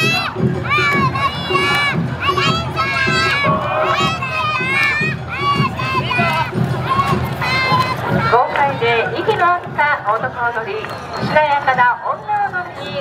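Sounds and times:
children shouting dance calls: 0.0 - 8.9
murmur of large crowd: 0.0 - 13.0.

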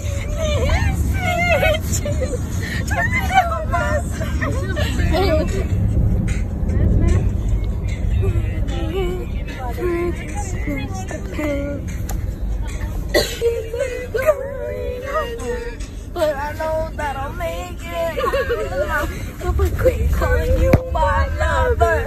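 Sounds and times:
car cabin rumble: 0.0 - 22.0.

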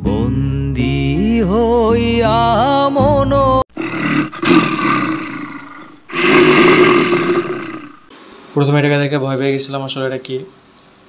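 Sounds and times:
lion roaring: 3.8 - 8.1.

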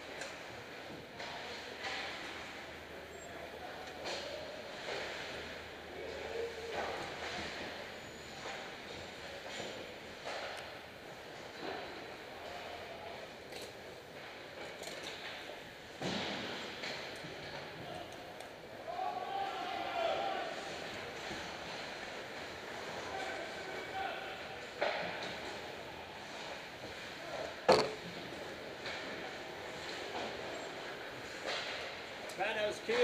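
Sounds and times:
distant skating: 0.0 - 33.0.

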